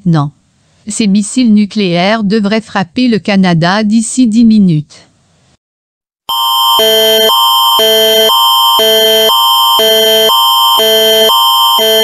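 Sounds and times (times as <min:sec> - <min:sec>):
alternating electronic alert tone: 0:06.3 - 0:12.0
steady high tone: 0:06.3 - 0:12.0.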